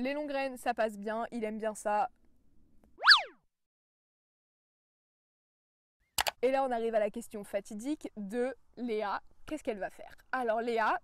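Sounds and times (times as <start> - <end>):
rising and falling tone sweep: 3.0 - 3.3.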